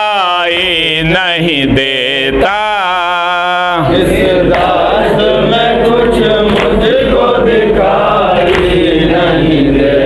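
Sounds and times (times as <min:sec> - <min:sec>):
men chanting a lament: 0:00.0 - 0:10.0.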